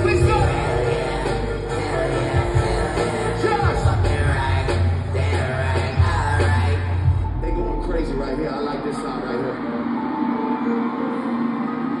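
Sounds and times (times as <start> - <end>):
concert music over sound system: 0.0 - 12.0.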